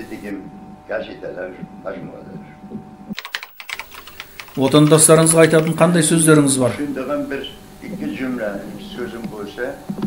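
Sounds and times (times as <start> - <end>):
faint hum: 0.0 - 10.0
sharp clicks: 3.1 - 5.9.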